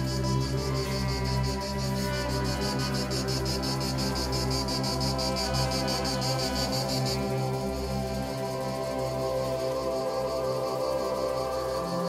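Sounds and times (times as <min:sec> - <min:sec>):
insect chirping: 0:00.0 - 0:12.0
music with sustained low notes: 0:00.0 - 0:12.0.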